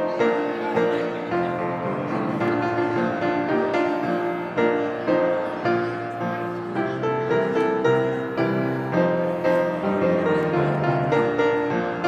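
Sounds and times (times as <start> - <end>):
piano playing hymn chords: 0.0 - 12.0.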